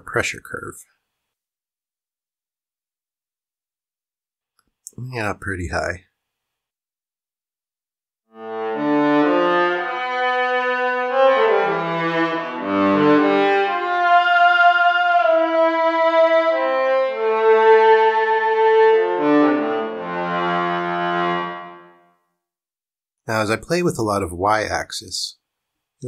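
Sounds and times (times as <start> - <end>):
synthesizer cello notes: 8.3 - 22.0.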